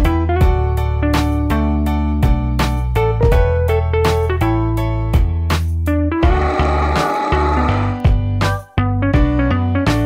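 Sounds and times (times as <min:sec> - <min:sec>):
keyboard melody over bass: 0:00.4 - 0:09.8.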